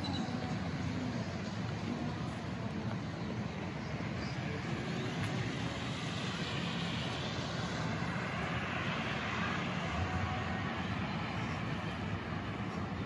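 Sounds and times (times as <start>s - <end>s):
vehicle rumble and hiss: 0.0s - 13.0s.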